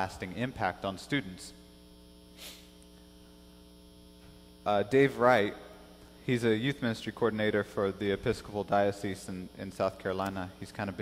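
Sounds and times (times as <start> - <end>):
faint electrical mains hum: 0.0 - 11.0
short soft hiss: 2.3 - 2.9.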